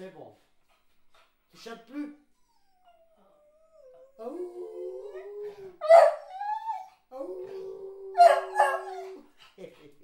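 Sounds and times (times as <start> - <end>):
dog whining howl: 2.9 - 9.2.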